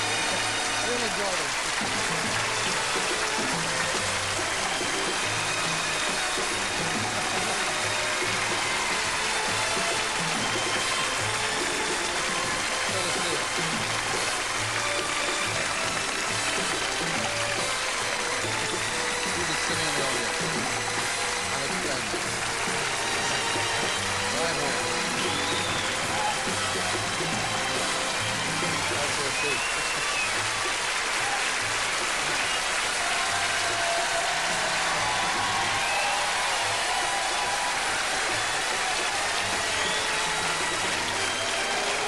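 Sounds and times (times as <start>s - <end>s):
audience applauding: 0.0s - 42.0s
music playing: 0.0s - 42.0s.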